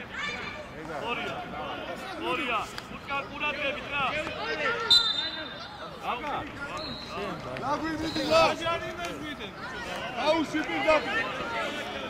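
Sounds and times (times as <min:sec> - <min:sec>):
high whistle tone: 0:04.9 - 0:05.6.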